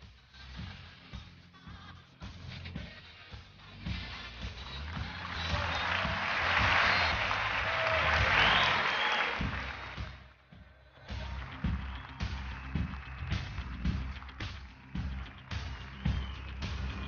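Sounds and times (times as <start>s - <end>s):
backing music with steady beat: 0.0s - 17.0s
audience applauding: 4.3s - 10.3s, 11.0s - 17.0s.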